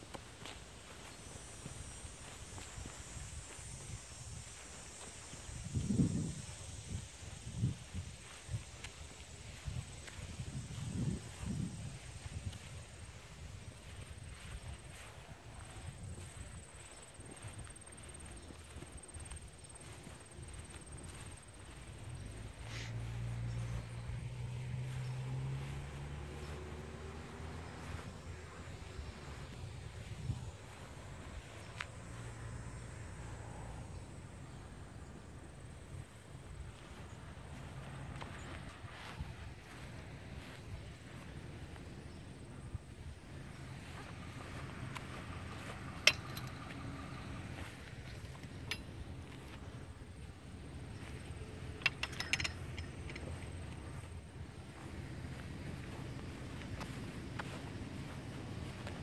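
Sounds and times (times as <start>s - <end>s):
footsteps on grass: 0.0s - 59.0s
outdoor ambience: 0.0s - 59.0s.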